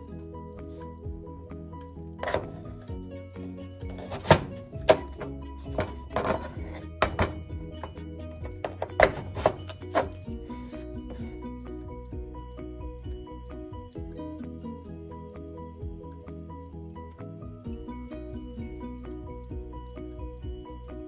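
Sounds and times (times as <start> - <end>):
background music: 0.0 - 21.0
knife knocking on cutting board: 4.0 - 7.6.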